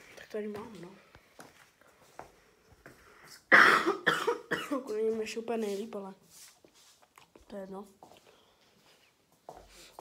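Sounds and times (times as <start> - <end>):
person coughing: 3.5 - 4.9.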